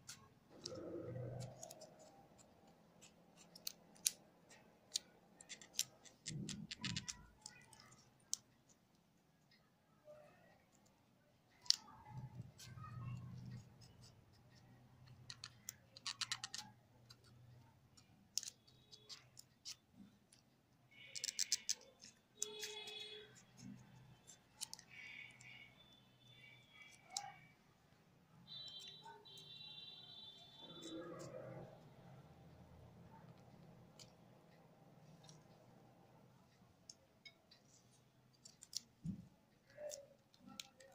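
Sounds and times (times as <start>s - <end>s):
knife scoring pomegranate rind: 21.0s - 25.7s.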